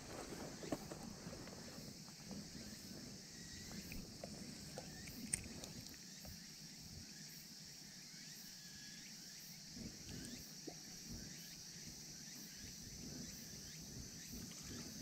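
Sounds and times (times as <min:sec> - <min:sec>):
insects chirring: 0:00.0 - 0:15.0.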